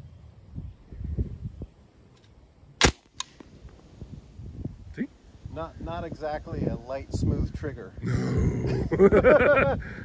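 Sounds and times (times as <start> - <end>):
suppressed gunshot: 2.8 - 3.5.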